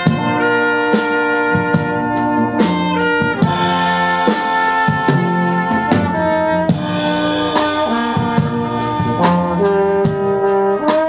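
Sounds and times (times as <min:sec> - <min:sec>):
brass quintet playing chords: 0:00.0 - 0:11.0
drum-kit hits: 0:01.4 - 0:11.0.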